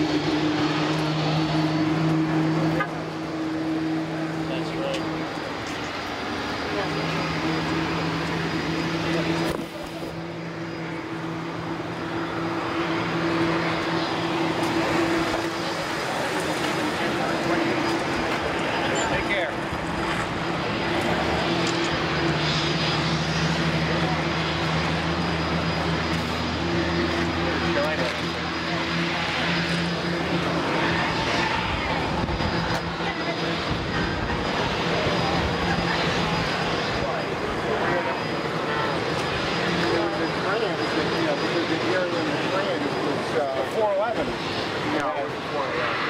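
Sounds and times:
crowd chatter: 0.0 - 46.0
piston aircraft engine humming: 0.0 - 46.0.

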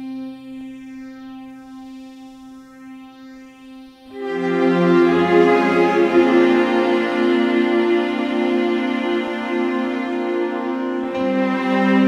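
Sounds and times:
sustained background music chords: 0.0 - 12.0.

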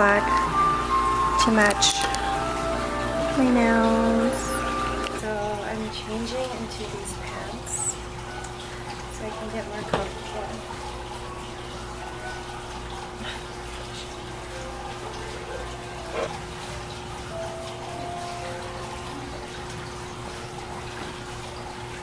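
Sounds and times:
faint soft music: 0.0 - 22.0
running trickling water: 0.0 - 22.0.

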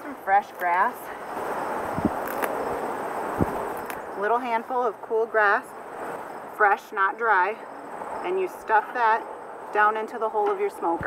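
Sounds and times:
grass rustling as pulled: 0.2 - 2.8.

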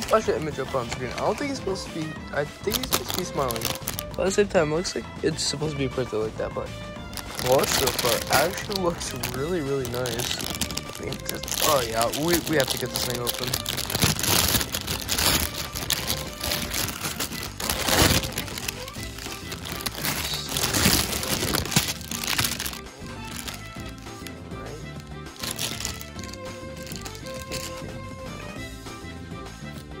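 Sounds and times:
plastic bag crinkling: 0.0 - 4.2, 7.1 - 24.4, 25.0 - 28.0
background music: 0.0 - 30.0.

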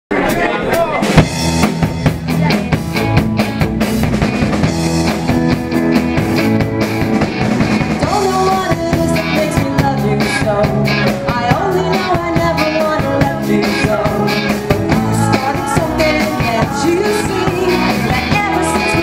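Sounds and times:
pop rock band playing: 0.1 - 19.0
drum hits: 0.2 - 9.1.

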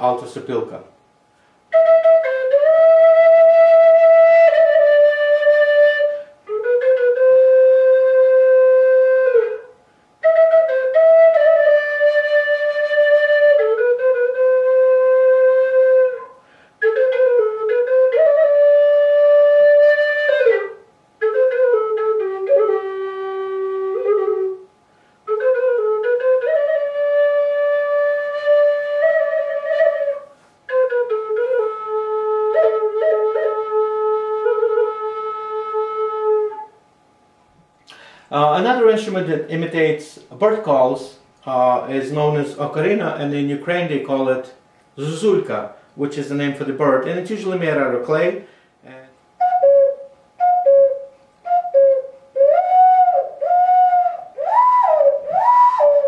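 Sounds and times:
wooden flute playing folk melody: 1.7 - 36.9, 48.9 - 56.0.

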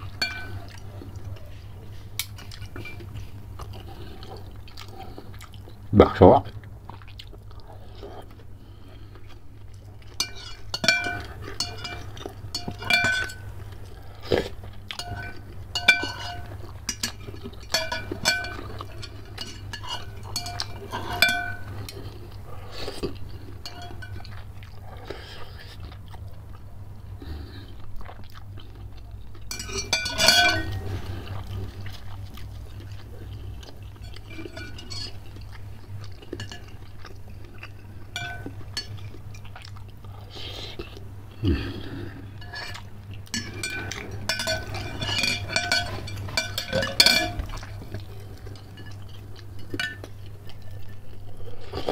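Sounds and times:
chewing: 0.0 - 51.9
spoon clinking on glass bowl: 0.1 - 0.7, 2.2 - 3.1, 10.2 - 13.5, 15.0 - 21.8, 23.6 - 24.4, 29.5 - 31.0, 34.0 - 35.2, 38.2 - 39.0, 42.4 - 48.0, 48.6 - 50.1.

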